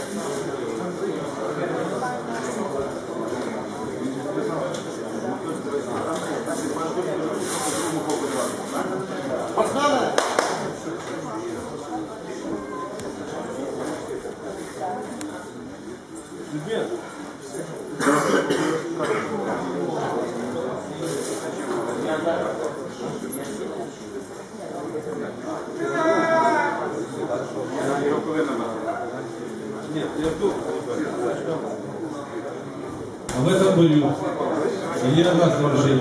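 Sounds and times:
indistinct voices in echoing hall: 0.0 - 36.0.

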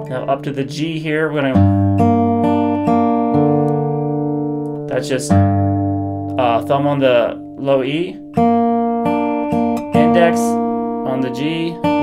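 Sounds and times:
fingerpicked acoustic guitar: 0.0 - 12.0.

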